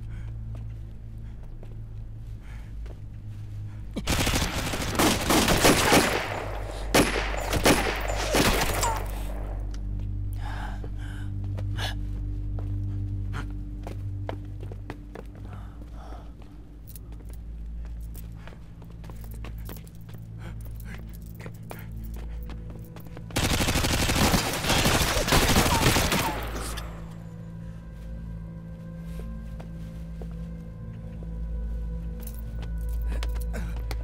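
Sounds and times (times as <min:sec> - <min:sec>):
low music drone: 0:00.0 - 0:34.0
gunshots: 0:04.0 - 0:09.6, 0:23.4 - 0:27.0
rapid gunfire burst: 0:04.1 - 0:09.1, 0:23.4 - 0:26.8.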